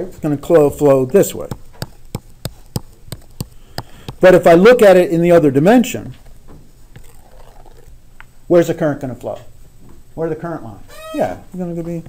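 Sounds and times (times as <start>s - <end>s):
stylus tapping on tablet screen: 0.7s - 4.5s.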